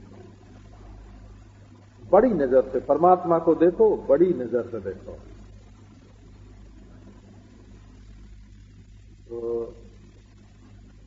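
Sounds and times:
background hiss: 0:00.0 - 0:11.0
low electrical hum: 0:00.0 - 0:11.0.

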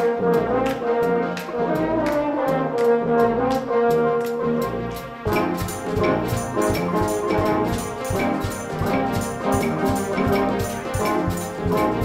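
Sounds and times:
brass sustained notes: 0:00.0 - 0:12.0
drum kit and percussion: 0:00.0 - 0:12.0.

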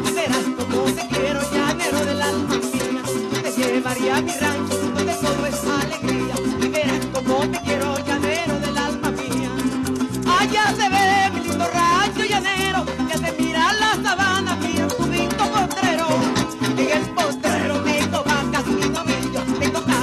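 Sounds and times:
bass line: 0:00.0 - 0:20.0
maracas: 0:00.0 - 0:20.0
strummed cuatro: 0:00.0 - 0:20.0.

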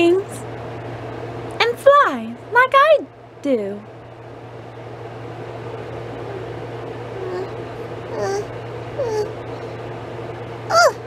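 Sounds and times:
mechanical hum with whirring: 0:00.0 - 0:11.0.

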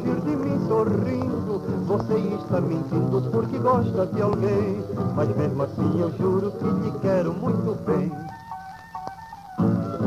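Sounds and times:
held instrumental notes: 0:00.0 - 0:10.0.

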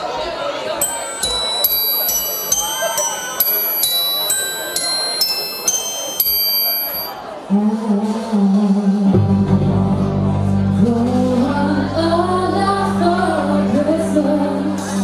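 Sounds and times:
crowd chatter: 0:00.0 - 0:15.0
bell-toned melody: 0:00.8 - 0:07.2.

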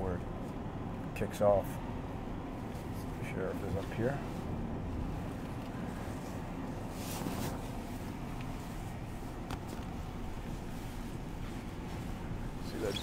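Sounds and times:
truck engine and road noise: 0:00.0 - 0:13.0.

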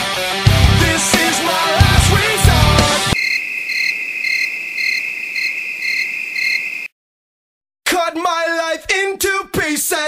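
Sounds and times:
rock music: 0:00.0 - 0:03.2
crickets chirping: 0:03.2 - 0:06.9.

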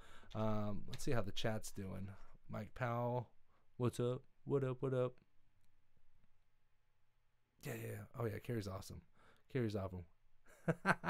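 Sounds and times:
person speaking: 0:07.6 - 0:10.1.

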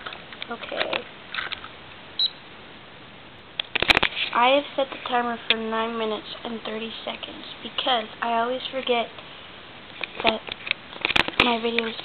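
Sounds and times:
short high timer beep: 0:02.2 - 0:02.4.

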